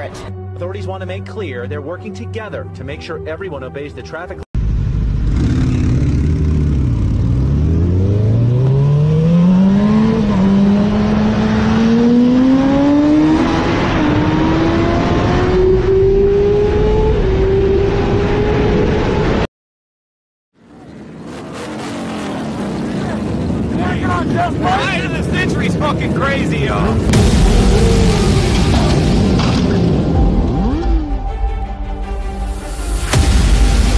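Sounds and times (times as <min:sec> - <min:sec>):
motorcycle engine accelerating: 0:04.6 - 0:19.4, 0:20.7 - 0:24.8, 0:25.6 - 0:31.4.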